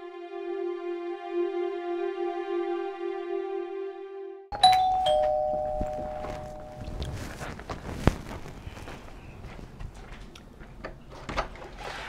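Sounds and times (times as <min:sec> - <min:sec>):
ding-dong doorbell chime: 0:04.5 - 0:07.0.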